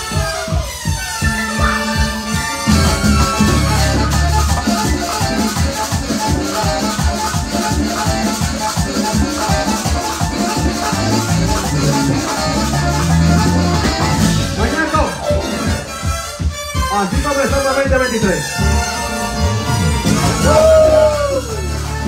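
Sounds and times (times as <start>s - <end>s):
congas and hand percussion: 0.0s - 22.0s
latin dance band playing: 0.0s - 22.0s
electric bass: 1.6s - 16.5s, 18.4s - 22.0s.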